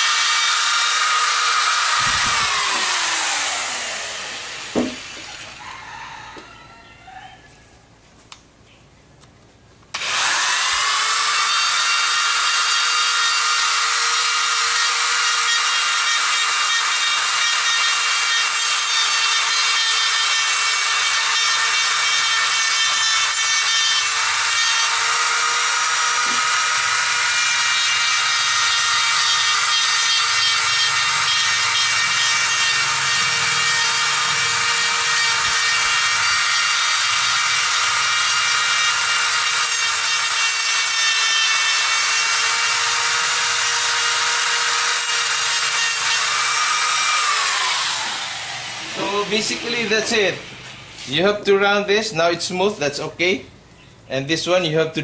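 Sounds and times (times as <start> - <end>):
electric rotary grinder whining: 0.0 - 5.6, 10.0 - 51.2
grinder spinning down: 0.0 - 5.6, 10.0 - 50.5.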